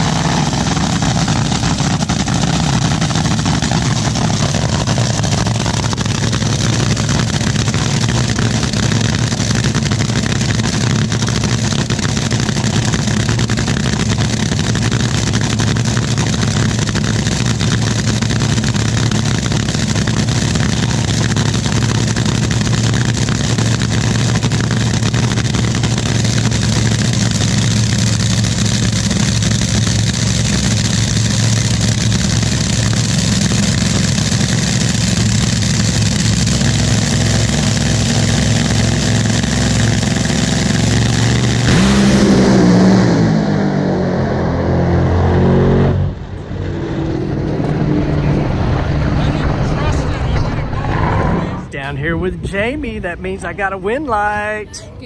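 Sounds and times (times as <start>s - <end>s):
dragster engine idling loudly: 0.0s - 42.8s
dragster engine full throttle: 0.0s - 54.3s.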